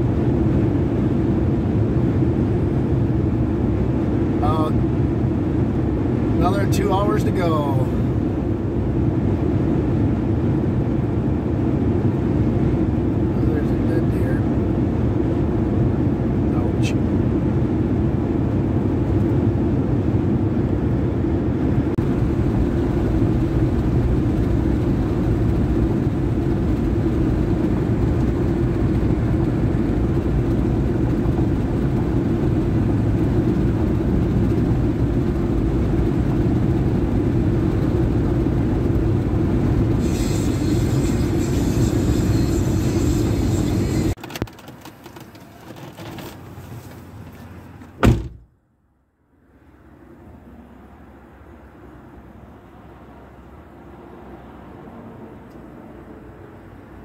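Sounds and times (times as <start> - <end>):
tyre and wind rumble in cab: 0.0 - 48.6.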